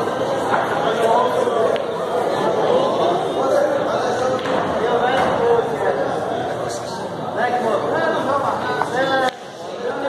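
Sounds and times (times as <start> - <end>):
men chattering: 0.2 - 10.0.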